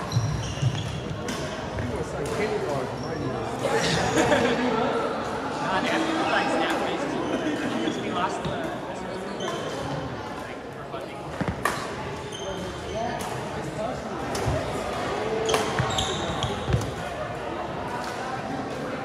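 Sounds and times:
rackets hitting shuttlecock: 11.3 - 12.0, 14.2 - 15.9.

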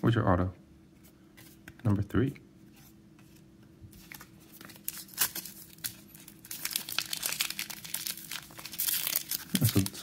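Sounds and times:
foil wrapper crinkling: 4.1 - 10.0.

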